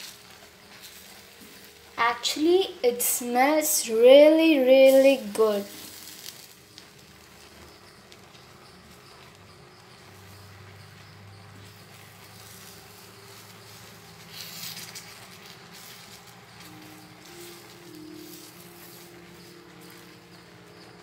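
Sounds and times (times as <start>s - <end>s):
spatula scraping in a pan: 4.8s - 20.8s.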